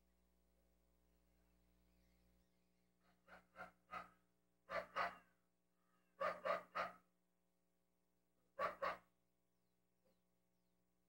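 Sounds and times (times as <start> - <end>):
dog barking: 3.2 - 5.3, 6.2 - 7.1, 8.6 - 9.1.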